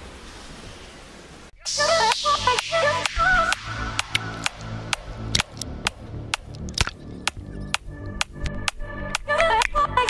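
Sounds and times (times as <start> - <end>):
sustained low bass: 3.3 - 9.0.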